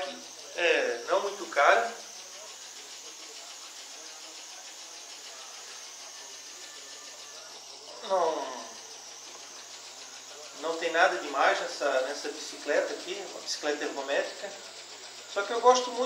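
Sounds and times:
exercise bike flywheel whirring: 0:00.0 - 0:16.0.

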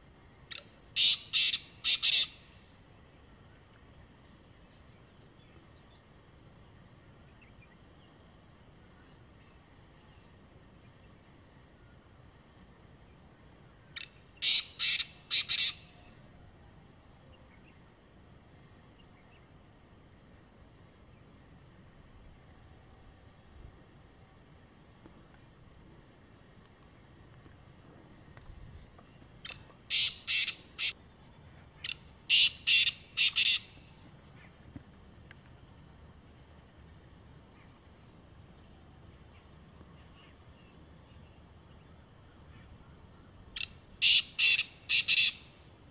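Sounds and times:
francolin calling: 0:00.5 - 0:02.6, 0:13.8 - 0:16.2, 0:29.4 - 0:31.0, 0:31.8 - 0:33.9, 0:43.5 - 0:45.6.

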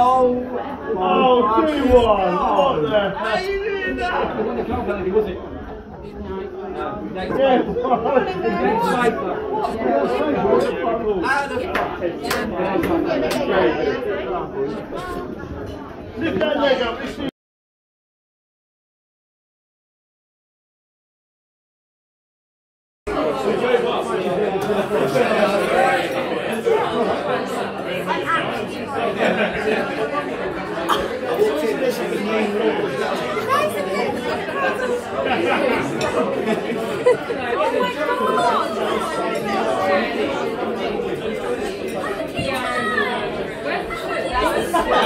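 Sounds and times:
hum of talk in a large room: 0:00.0 - 0:17.3, 0:23.1 - 0:45.0
people chattering: 0:00.0 - 0:17.3, 0:23.1 - 0:45.0.

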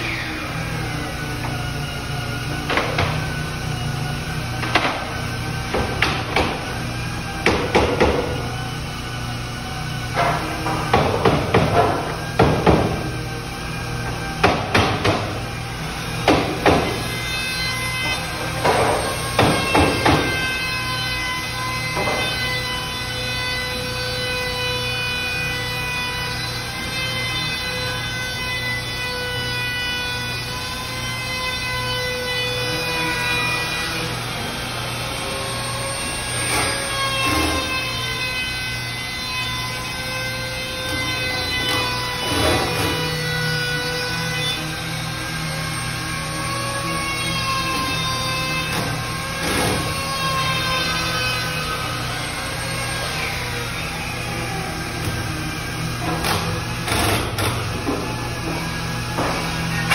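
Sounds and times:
electric router whine: 0:00.0 - 0:59.9.

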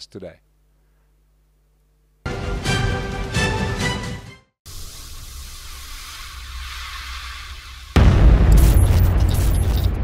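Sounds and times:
hiss over low rumble: 0:04.7 - 0:08.8
crackling glitch sounds: 0:04.7 - 0:10.0
cinematic boom: 0:08.0 - 0:10.0.

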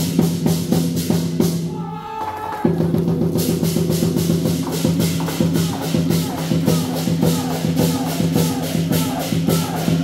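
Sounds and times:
cymbals clashing: 0:00.0 - 0:10.0
large drum beating: 0:02.5 - 0:10.0.

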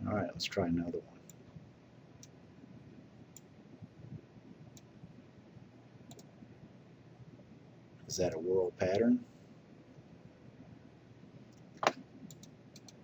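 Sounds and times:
room hiss: 0:00.0 - 0:13.0
computer mouse clicking: 0:06.1 - 0:06.3, 0:11.5 - 0:13.0.

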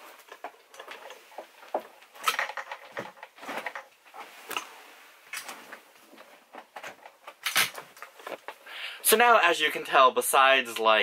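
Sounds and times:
rustling of handled objects: 0:00.0 - 0:08.8.

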